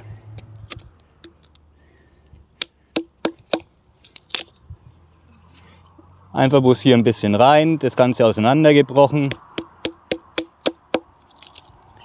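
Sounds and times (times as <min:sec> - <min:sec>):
hatchet chopping wood: 0:02.6 - 0:03.7, 0:09.2 - 0:11.1.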